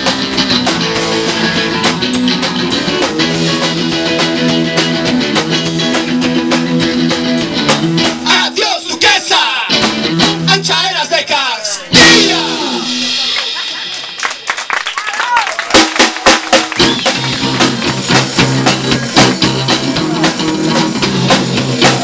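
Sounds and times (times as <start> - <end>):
live rock band: 0.0 - 22.0
scattered drum hits: 12.0 - 13.8.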